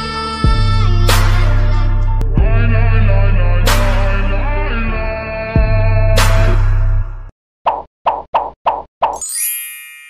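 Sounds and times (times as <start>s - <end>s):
music: 0.0s - 7.3s
bright chime ringing: 9.2s - 10.0s.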